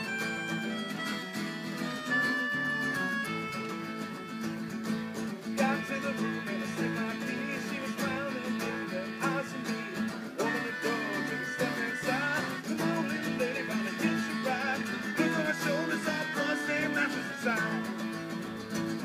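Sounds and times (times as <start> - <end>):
lap guitar sliding notes: 0.0 - 19.0
melodica holding notes: 0.0 - 19.0
strummed acoustic guitars: 0.0 - 19.0.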